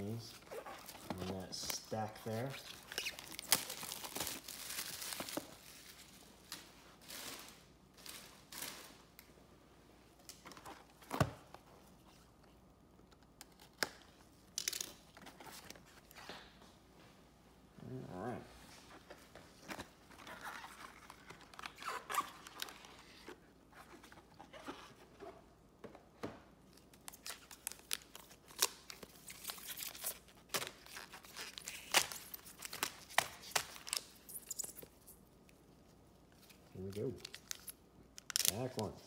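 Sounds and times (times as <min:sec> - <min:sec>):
foil card packs crinkling: 0:00.1 - 0:06.2, 0:27.0 - 0:34.8.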